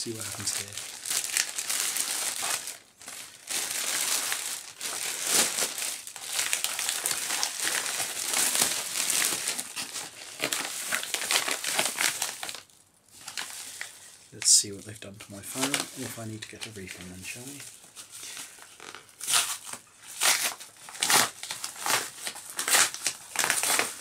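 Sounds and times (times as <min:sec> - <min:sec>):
plastic bag crinkling: 0:00.0 - 0:24.0.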